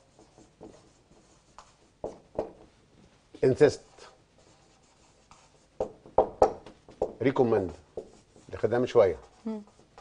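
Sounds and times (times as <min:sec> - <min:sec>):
marker pen on whiteboard: 0:00.0 - 0:10.0.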